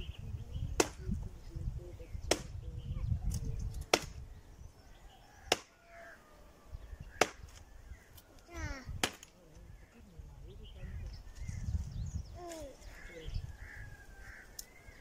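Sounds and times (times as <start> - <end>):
axe chopping wood: 0.8 - 1.0, 2.3 - 2.6, 3.9 - 4.2, 5.5 - 5.7, 7.2 - 7.6, 9.0 - 9.4.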